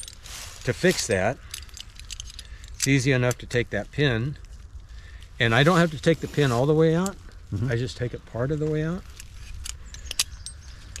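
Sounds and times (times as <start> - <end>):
metal connectors clinking: 0.0 - 7.4, 8.4 - 11.0
climbing hardware clicking: 0.9 - 3.7, 8.7 - 11.0.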